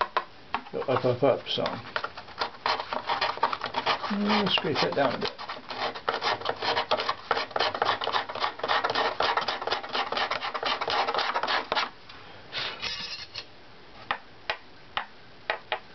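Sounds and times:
scraper rasping on wood: 0:02.0 - 0:11.9.

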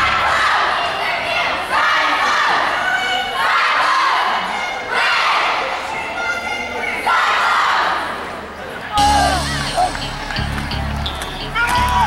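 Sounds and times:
girls shouting a cheer: 0:00.0 - 0:08.2.

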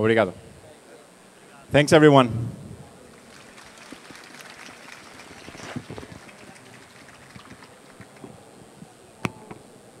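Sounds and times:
audience hubbub in large hall: 0:00.0 - 0:10.0.

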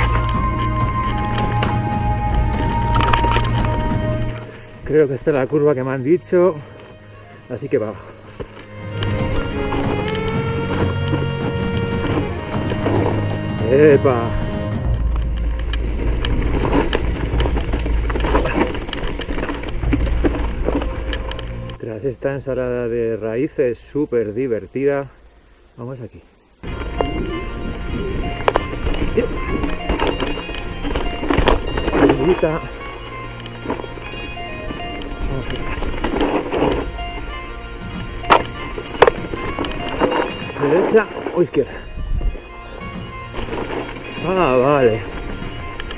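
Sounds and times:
bike tyres rumbling on dirt: 0:00.0 - 0:21.7
background music: 0:00.0 - 0:25.6, 0:26.5 - 0:45.9.

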